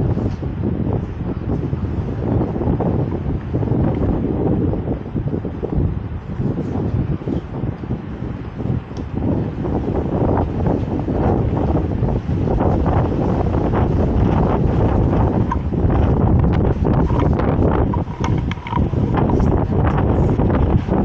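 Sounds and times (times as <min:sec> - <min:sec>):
strong wind buffeting microphone: 0:00.0 - 0:21.0.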